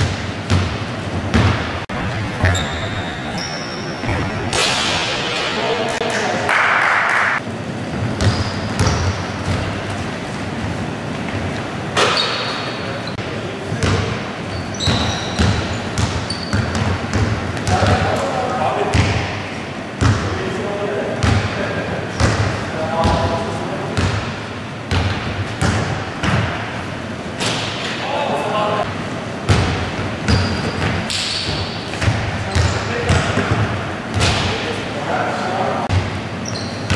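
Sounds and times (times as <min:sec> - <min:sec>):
sneakers squeaking on court: 0:00.1 - 0:05.3, 0:08.2 - 0:09.6, 0:14.5 - 0:17.8, 0:30.3 - 0:33.3, 0:36.4 - 0:36.9.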